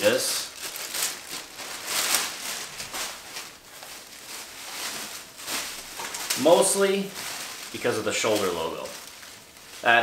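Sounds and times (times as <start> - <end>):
jersey and packaging rustling: 0.0 - 10.0.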